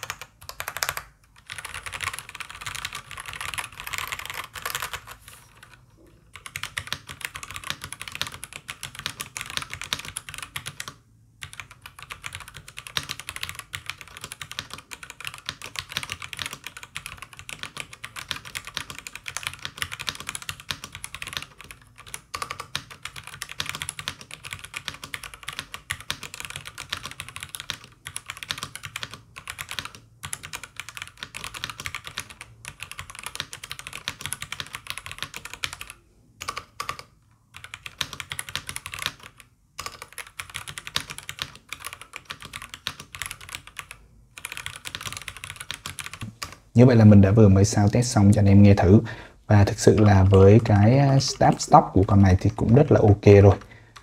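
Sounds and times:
mechanical keyboard typing: 0.0s - 46.6s.

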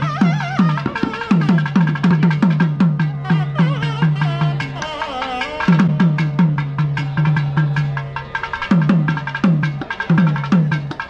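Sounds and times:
reed wind instrument melody: 0.0s - 11.0s
steady drum strokes: 0.0s - 11.0s.

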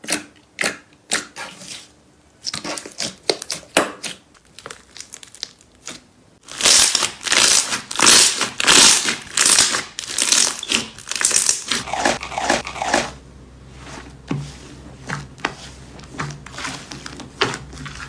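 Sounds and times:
wet crackling and popping of slime: 2.4s - 11.8s.

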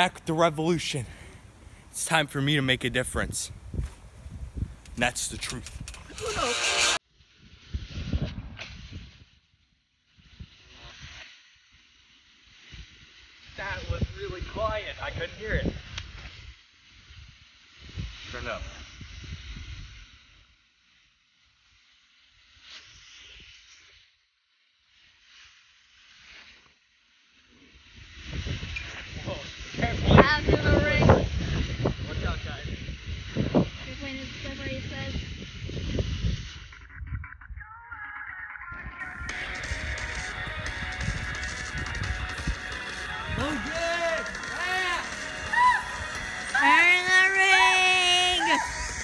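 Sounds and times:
music playing: 39.0s - 49.0s.

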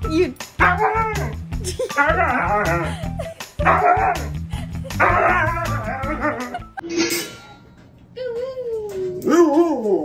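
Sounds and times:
background music: 0.0s - 10.0s
dog howling: 5.0s - 6.6s.

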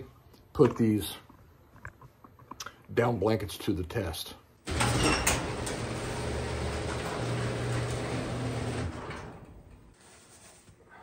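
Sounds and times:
garage door rumbling: 4.7s - 10.0s.

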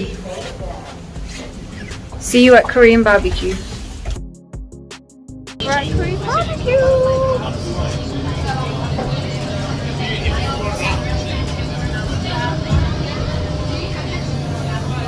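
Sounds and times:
many diners talking: 0.0s - 3.8s, 5.6s - 15.0s
steady low hum: 5.6s - 15.0s.

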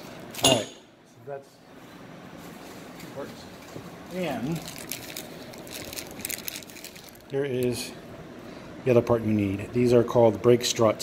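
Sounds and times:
plastic bag crinkling: 4.4s - 7.5s.

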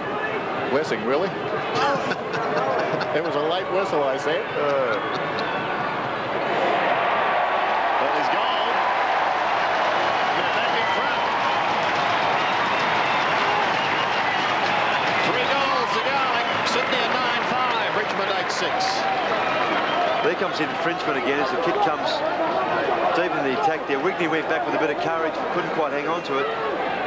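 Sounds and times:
stadium crowd cheering and shouting: 0.0s - 27.0s.

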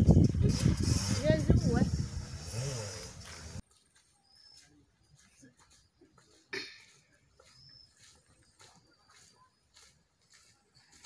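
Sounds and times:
woman talking: 0.4s - 2.0s.

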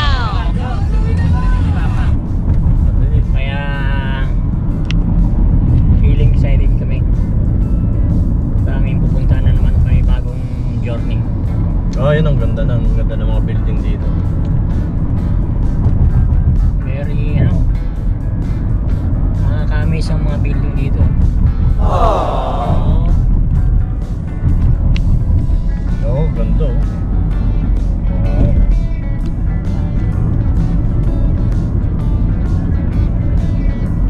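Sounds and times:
car road and engine rumble: 0.0s - 34.0s
person speaking: 21.8s - 23.2s.

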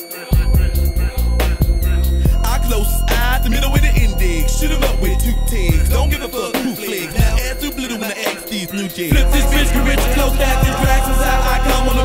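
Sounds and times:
rapping over a beat: 0.0s - 12.0s
deep bass: 0.4s - 6.2s, 7.2s - 7.9s, 9.1s - 12.0s.

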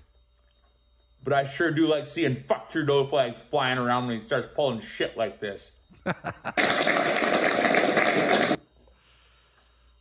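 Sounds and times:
group of people applauding: 6.5s - 8.6s.

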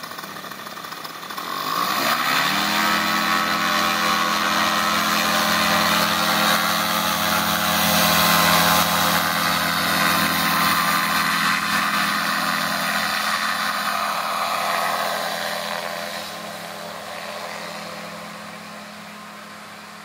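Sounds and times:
paramotor engine and propeller drone: 0.0s - 20.0s.

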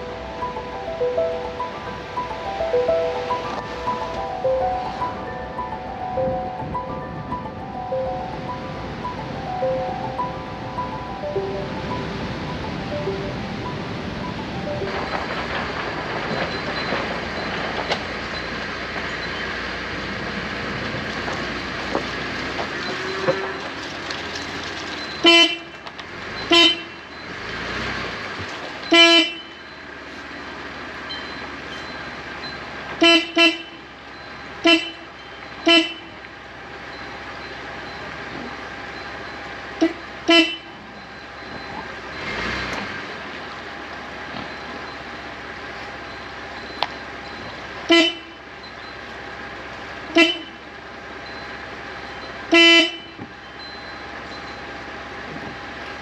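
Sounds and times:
background music: 0.0s - 15.8s
car horn toots: 22.9s - 23.8s, 25.2s - 25.8s, 26.4s - 27.2s, 28.8s - 29.7s, 33.0s - 33.9s, 34.6s - 36.2s, 39.8s - 40.8s, 47.8s - 48.5s, 50.1s - 50.7s, 52.4s - 53.3s.

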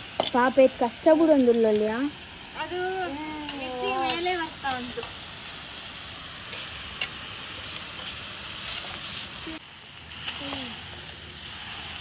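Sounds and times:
noodles sizzling in a pan: 0.0s - 12.0s.

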